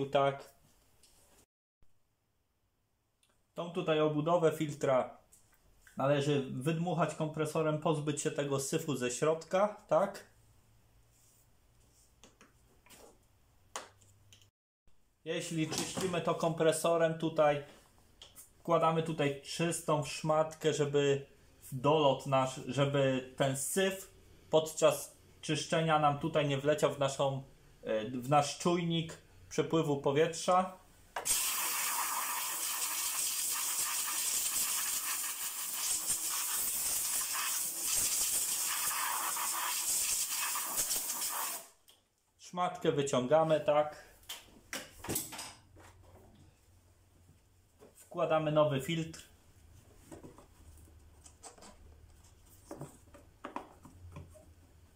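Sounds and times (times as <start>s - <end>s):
compressed air blow gun hissing: 31.3s - 41.7s.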